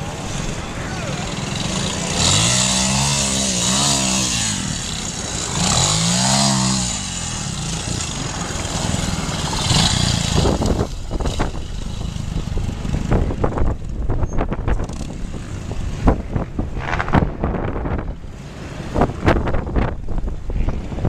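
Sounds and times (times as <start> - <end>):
motorcycle engine running: 0.5 - 18.1.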